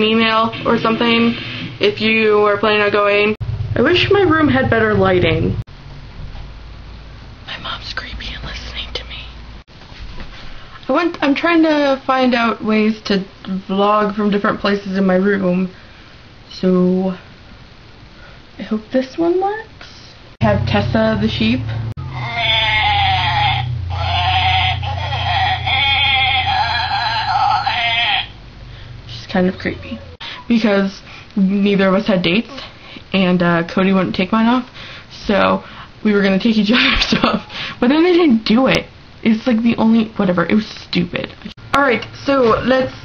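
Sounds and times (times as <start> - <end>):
person whispering: 7.5 - 9.4
low steady hum: 10.4 - 43.0
low hum: 20.3 - 30.2
toy sheep bleating: 22.1 - 28.4.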